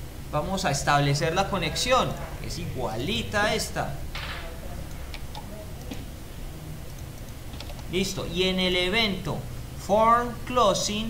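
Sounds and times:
low background hum: 0:00.0 - 0:11.0
mouse and keyboard clicks: 0:06.9 - 0:07.9.

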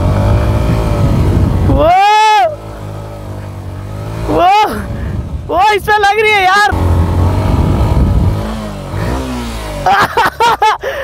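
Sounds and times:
motorcycle engine revving high: 0:00.0 - 0:10.8.

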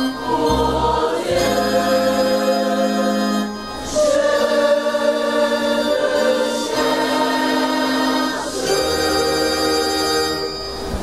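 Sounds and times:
choir singing a hymn: 0:00.0 - 0:11.0.

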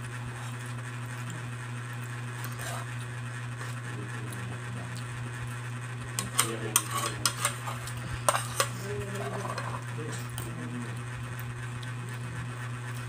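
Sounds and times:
metal spoons clinking on a plate: 0:06.2 - 0:09.8.

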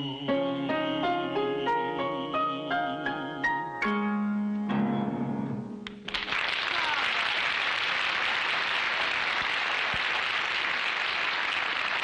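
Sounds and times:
piano song: 0:00.0 - 0:05.9
audience applauding: 0:05.9 - 0:12.0.

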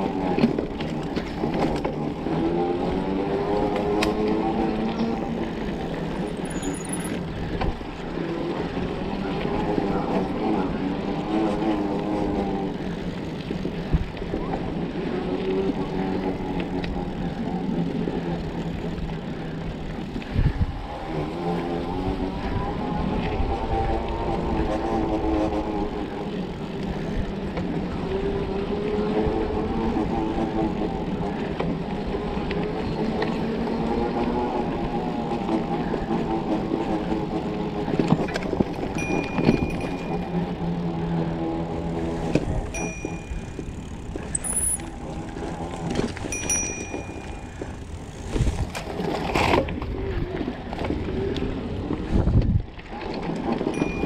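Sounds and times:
bike tires humming on dirt: 0:00.0 - 0:54.0
wind on microphone: 0:20.2 - 0:20.9, 0:37.2 - 0:54.0.

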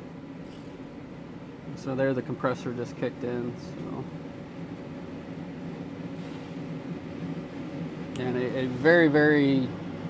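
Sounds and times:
air conditioner humming: 0:00.0 - 0:10.0.

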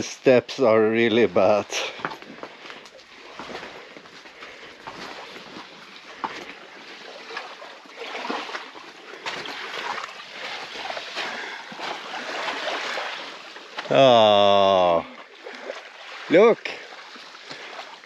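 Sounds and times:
footsteps on stone and sand: 0:01.4 - 0:07.6
small waves lapping on shore: 0:01.6 - 0:18.0.

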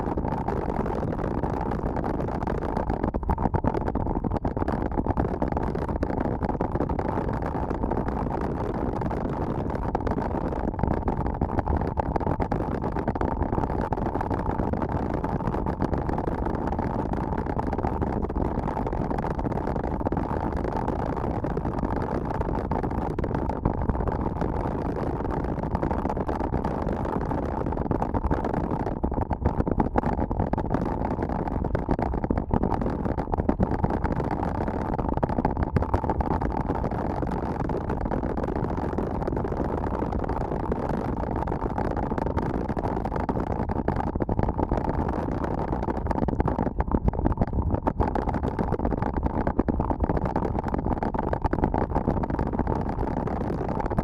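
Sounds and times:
wind rushing on microphone: 0:00.0 - 0:54.0.

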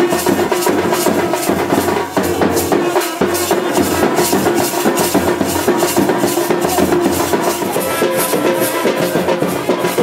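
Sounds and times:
bass drums beaten with mallets: 0:00.0 - 0:10.0
maracas shaking: 0:00.0 - 0:10.0.

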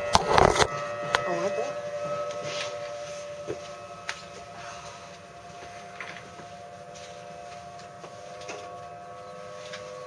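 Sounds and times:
warning siren steady tone: 0:00.0 - 0:10.0.

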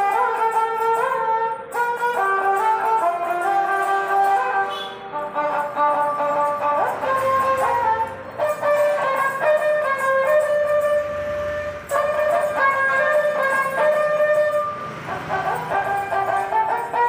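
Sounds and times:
bowed fiddle melody: 0:00.0 - 0:17.0.

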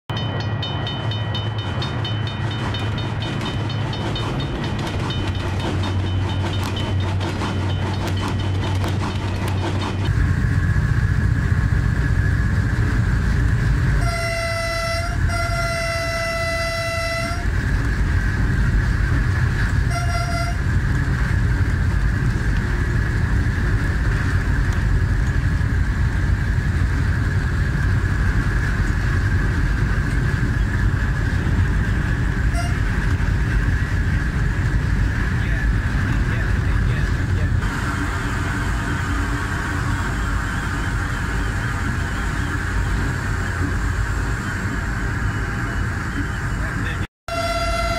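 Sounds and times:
diesel locomotive rumble: 0:00.1 - 0:47.9
locomotive horn: 0:13.9 - 0:17.7, 0:19.7 - 0:20.8, 0:32.4 - 0:33.1, 0:47.3 - 0:47.9.

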